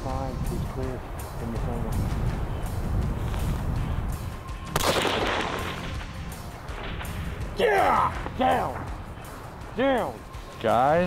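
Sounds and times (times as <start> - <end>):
rifle shot with echo: 4.7 - 7.4.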